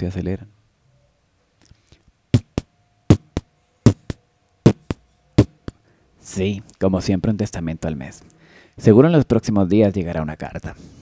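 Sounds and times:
faint steady tone: 0.6s - 6.2s
heartbeat thumps: 2.4s - 5.8s.

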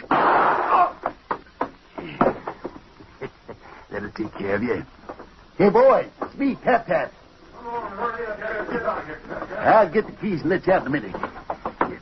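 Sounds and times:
sharp knocks and thuds: 11.1s - 12.0s.

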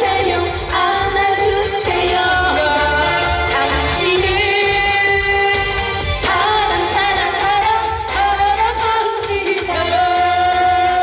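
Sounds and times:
musical accompaniment with bass: 0.0s - 11.0s
woman singing into microphone: 0.0s - 11.0s.

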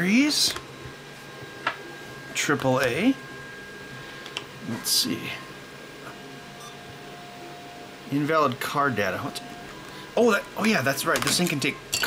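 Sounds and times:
printers whirring: 0.0s - 11.9s.

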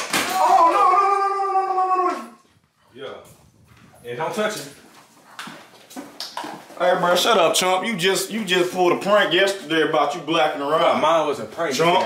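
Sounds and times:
person wailing no: 0.3s - 2.4s.

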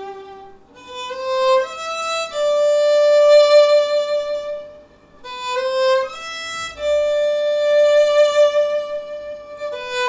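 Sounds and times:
solo violin melody: 0.0s - 10.0s.

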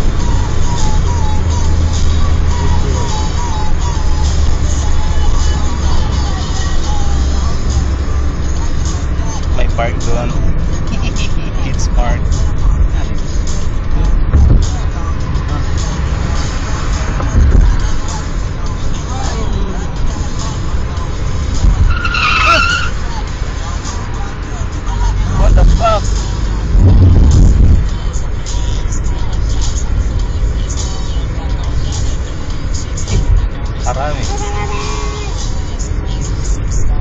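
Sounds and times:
car road and engine rumble: 0.0s - 37.0s.

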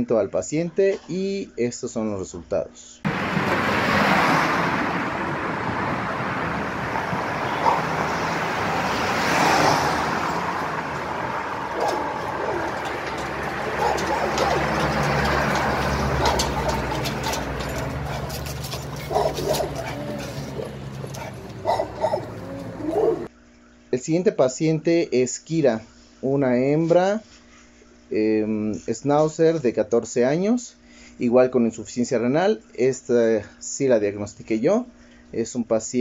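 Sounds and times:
traffic noise: 3.1s - 23.3s
dog barking: 7.5s - 8.1s, 11.5s - 23.3s.

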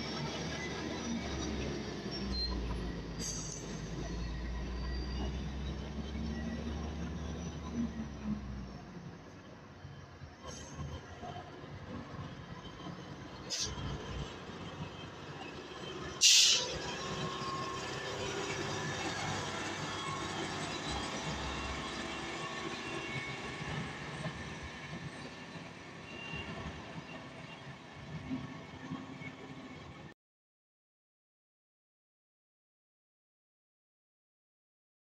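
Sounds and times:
heavy trucks driving past: 0.0s - 30.0s.

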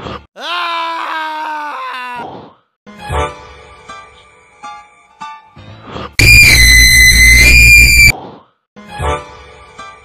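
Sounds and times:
distorted high-pitched scream: 6.2s - 8.1s.

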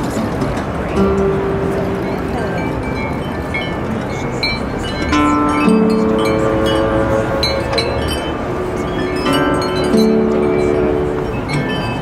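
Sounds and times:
bowed cello notes: 0.9s - 12.0s
metal chimes ringing: 0.9s - 12.0s.

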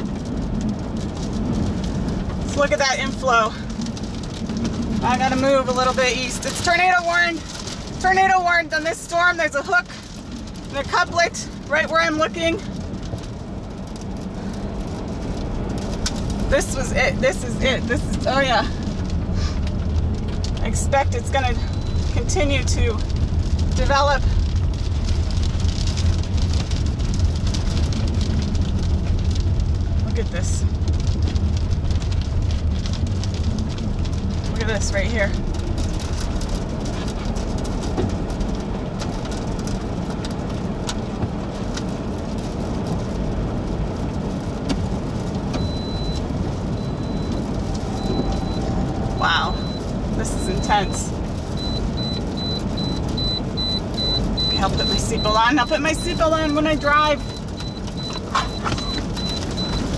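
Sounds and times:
low vehicle rumble: 0.0s - 59.9s
seatbelt reminder chime beeping: 57.6s - 59.9s.

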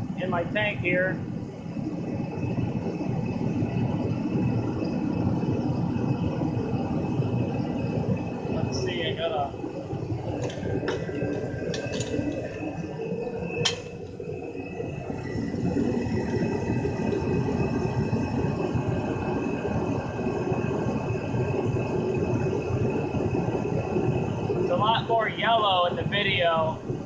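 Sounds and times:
faint high whine: 0.0s - 27.0s
heater fan and burner rushing: 0.0s - 27.0s.

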